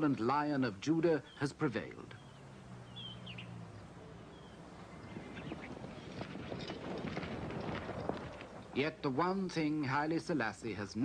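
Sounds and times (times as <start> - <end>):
high bird-like chirps: 2.2 - 3.6
horse hoofbeats: 4.8 - 9.0.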